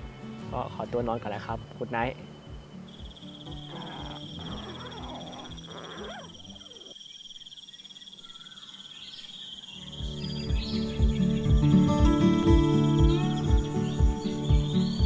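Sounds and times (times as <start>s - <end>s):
soft background music: 0.0s - 6.5s, 9.7s - 15.0s
insects trilling: 0.0s - 15.0s
croaking calls: 1.0s - 11.9s.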